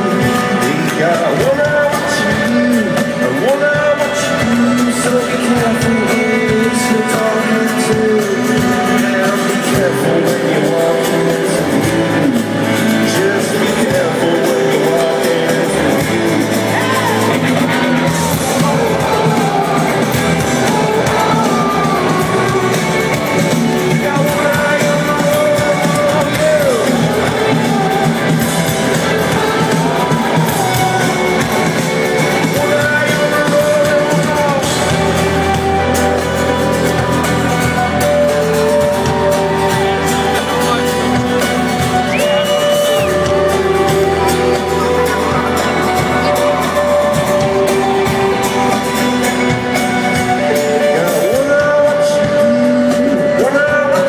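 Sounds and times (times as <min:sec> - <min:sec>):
acoustic guitar: 0:00.0 - 0:54.0
man singing: 0:00.0 - 0:54.0
rock band playing live: 0:00.0 - 0:54.0.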